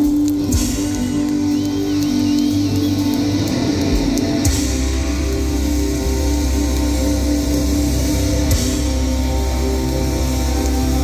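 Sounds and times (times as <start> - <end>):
bass guitar: 0.0 - 11.0
electric guitars sustained chords: 0.0 - 11.0.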